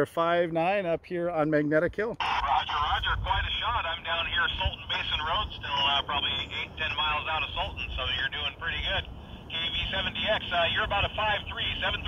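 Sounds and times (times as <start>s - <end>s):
radio speech over speaker: 2.1s - 12.0s
steady low rumble: 2.2s - 12.0s.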